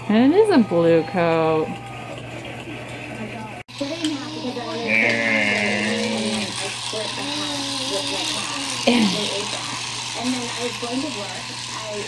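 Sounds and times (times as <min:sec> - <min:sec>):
indistinct talking: 0:00.0 - 0:12.0
small motor buzzing: 0:00.1 - 0:12.0.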